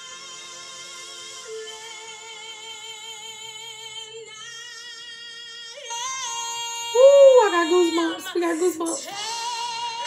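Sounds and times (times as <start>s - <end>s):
woman singing with vibrato: 5.9s - 10.0s.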